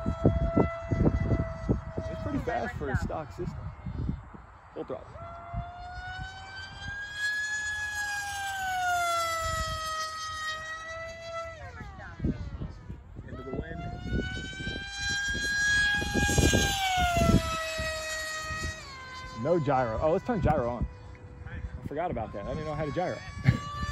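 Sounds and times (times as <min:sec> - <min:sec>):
rc jet motor whine: 0:00.0 - 0:23.9.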